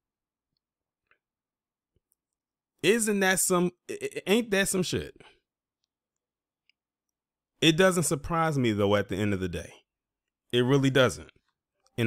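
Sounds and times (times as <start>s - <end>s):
man speaking: 2.8s - 5.4s, 7.6s - 9.9s, 10.5s - 11.4s.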